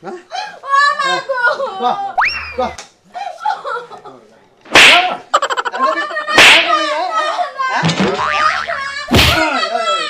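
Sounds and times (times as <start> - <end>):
cartoon boing sound effect: 8.1 - 9.3.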